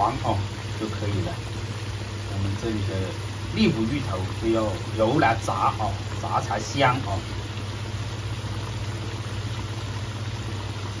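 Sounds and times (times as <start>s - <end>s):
oil sizzling and bubbling: 0.0s - 11.0s.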